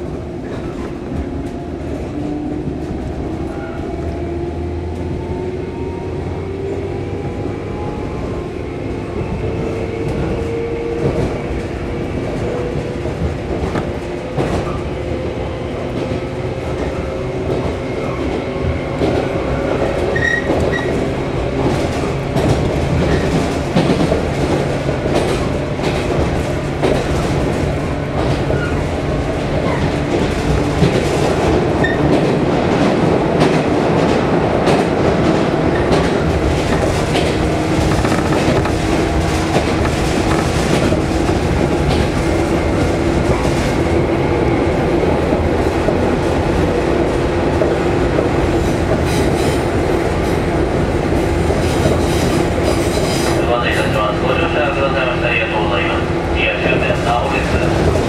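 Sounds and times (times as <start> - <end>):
train car rumble: 0.0 - 58.0.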